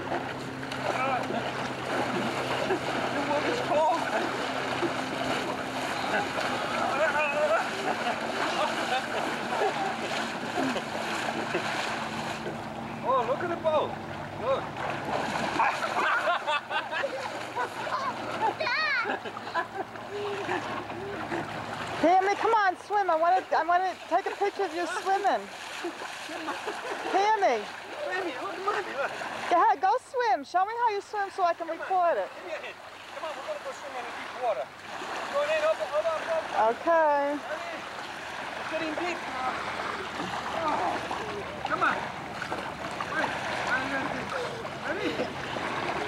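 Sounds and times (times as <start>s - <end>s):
water splashing: 0.0s - 46.0s.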